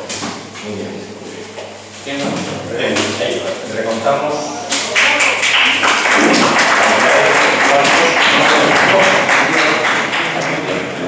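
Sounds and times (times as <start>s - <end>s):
crowd clapping and cheering: 4.8s - 11.0s.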